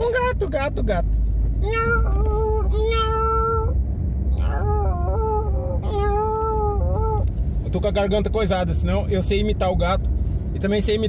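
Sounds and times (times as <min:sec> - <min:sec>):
car driving rumble: 0:00.0 - 0:11.0
man imitating cat meows: 0:01.6 - 0:03.7, 0:04.4 - 0:07.2.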